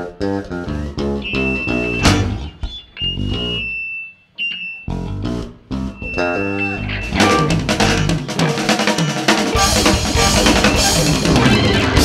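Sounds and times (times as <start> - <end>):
rock band playing: 0.0 - 2.5, 5.8 - 12.0.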